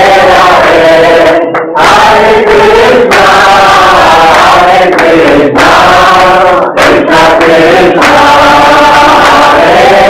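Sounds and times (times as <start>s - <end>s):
group chanting in unison: 0.0s - 10.0s.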